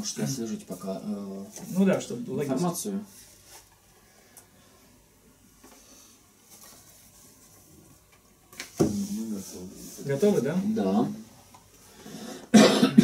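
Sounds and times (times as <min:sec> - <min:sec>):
faint rustling and handling: 0:00.0 - 0:12.0
person coughing loudly: 0:12.5 - 0:13.0.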